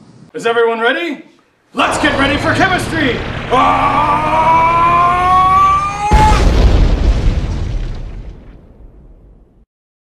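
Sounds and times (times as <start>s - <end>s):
man yelling: 1.8s - 6.5s
explosion sound effect: 1.9s - 9.6s.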